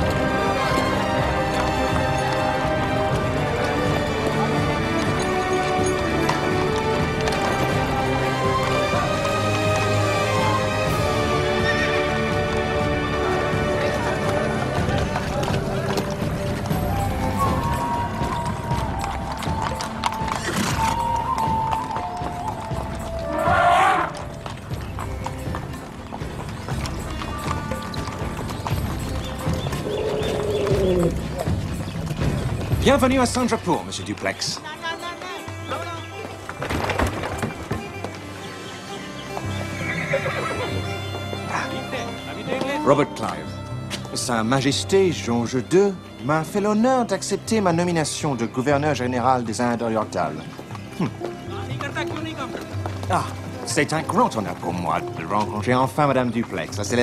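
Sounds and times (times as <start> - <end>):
film score music: 0.0 - 57.0
horse hooves clip-clopping on street: 0.0 - 57.0
loud animal call: 23.2 - 24.2, 29.8 - 31.4, 38.9 - 41.0.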